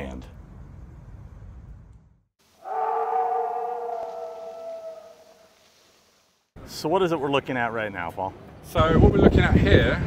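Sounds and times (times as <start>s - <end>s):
low outdoor rumble: 0.0s - 2.2s
werewolf howl: 2.6s - 5.5s.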